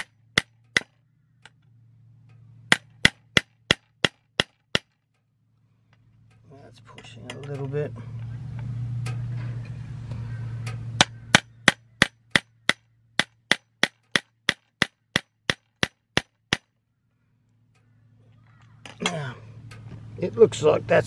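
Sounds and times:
centre punch snapping on metal: 0:00.0 - 0:01.0, 0:02.7 - 0:05.0, 0:10.7 - 0:16.7
low steady hum: 0:00.0 - 0:21.0.

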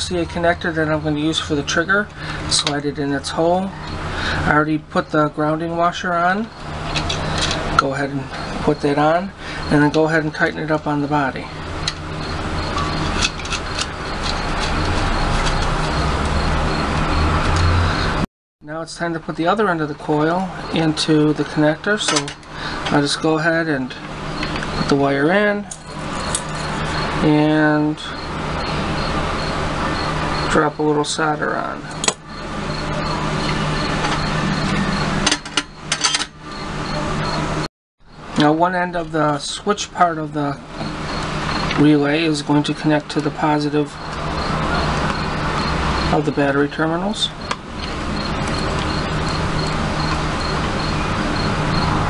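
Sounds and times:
background hiss and hum: 0:00.0 - 0:52.0.

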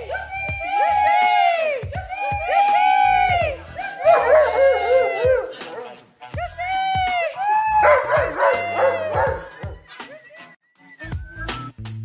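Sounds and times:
music: 0:00.0 - 0:12.0
husky howling: 0:04.0 - 0:06.0, 0:07.7 - 0:09.8.

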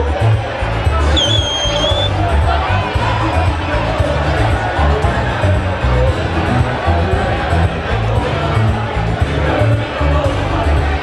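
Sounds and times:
amplified party music: 0:00.0 - 0:11.0
crowd hubbub: 0:00.0 - 0:11.0
high shrill whistle: 0:01.2 - 0:02.2.

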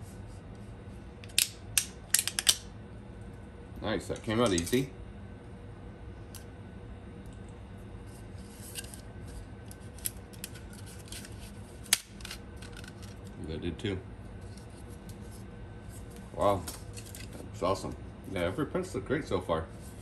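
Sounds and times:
faint steady hum: 0:00.0 - 0:20.0
plastic pieces clicking and rubbing: 0:09.9 - 0:13.2.

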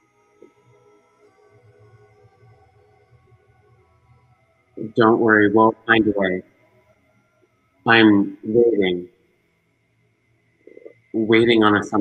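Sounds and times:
person speaking: 0:04.8 - 0:06.4, 0:07.9 - 0:09.1, 0:10.8 - 0:12.0.

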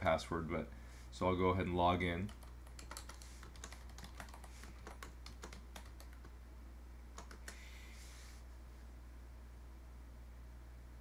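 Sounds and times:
soft rush of noise: 0:00.0 - 0:11.0
typing on computer keyboard: 0:02.2 - 0:06.4, 0:07.2 - 0:07.6.

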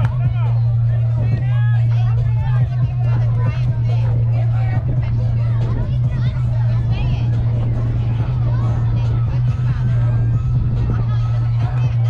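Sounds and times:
overlapping chatter and calls: 0:00.0 - 0:12.0
steady low hum: 0:00.0 - 0:12.0.

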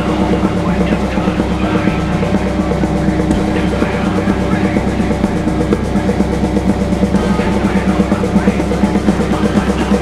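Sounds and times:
recorded punk song: 0:00.0 - 0:10.0
rock drum kit played fast: 0:00.0 - 0:10.0
sustained guitar and bass: 0:00.0 - 0:10.0.

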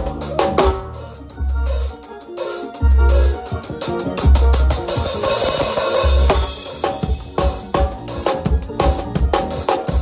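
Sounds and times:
band playing: 0:00.0 - 0:10.0.

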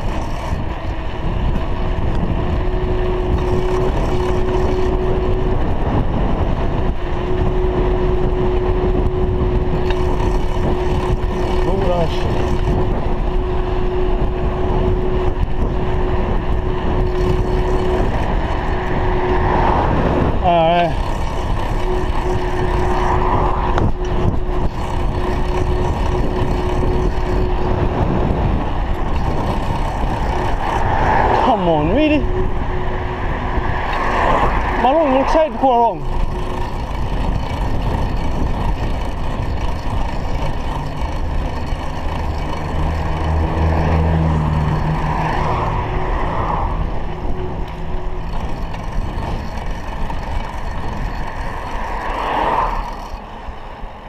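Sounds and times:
car engine approaching: 0:00.0 - 0:54.0
tyre noise on tarmac: 0:00.0 - 0:54.0
warbling tones: 0:00.0 - 0:54.0
wind rushing over camera mic: 0:00.0 - 0:54.0.

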